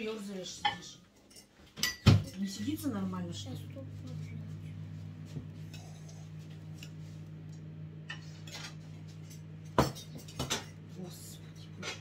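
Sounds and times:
low hum: 0:02.7 - 0:12.0.

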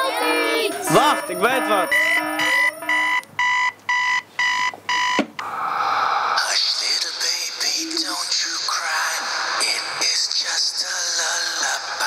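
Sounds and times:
phone alarm beeping: 0:00.0 - 0:05.3.

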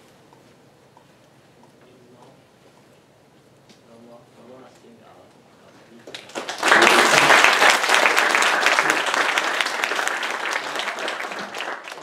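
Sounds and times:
audience applauding: 0:06.0 - 0:12.0.

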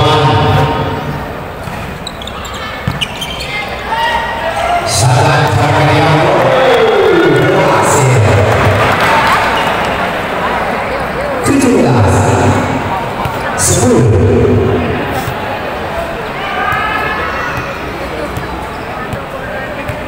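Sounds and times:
crowd din: 0:00.0 - 0:20.0.

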